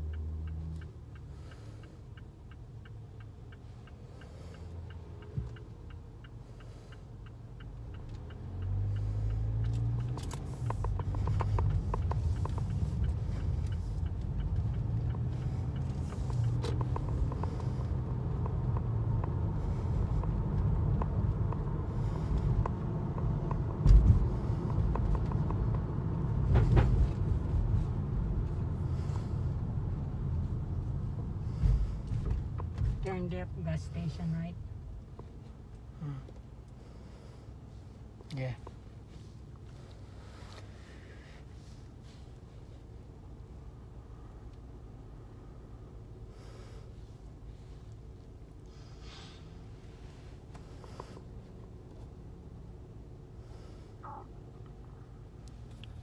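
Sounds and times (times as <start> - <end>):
car engine and road rumble: 0.0 - 56.0
turn signal ticking: 0.0 - 56.0.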